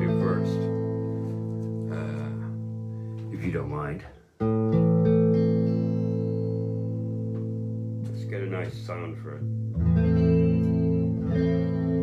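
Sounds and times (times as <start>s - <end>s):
picked electric guitar notes: 0.0s - 12.0s
electric guitar chord ringing: 4.4s - 8.2s, 9.4s - 12.0s.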